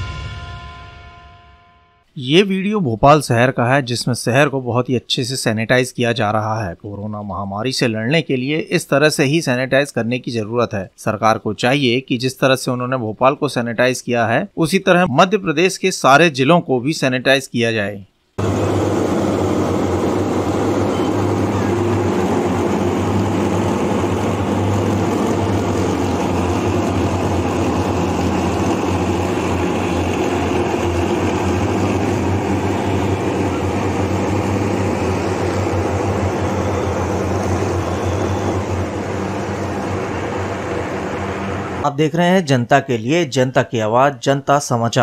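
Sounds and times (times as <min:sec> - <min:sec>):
fogging machine running: 0:18.4 - 0:41.9.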